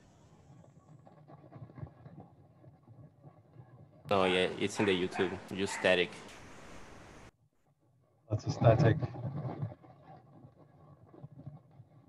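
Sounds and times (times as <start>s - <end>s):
crackling static: 0.0s - 7.3s, 8.4s - 12.0s.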